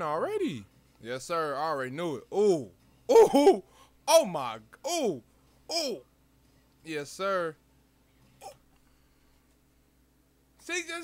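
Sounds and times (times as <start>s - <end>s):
man exclaiming ooh: 2.3s - 6.0s.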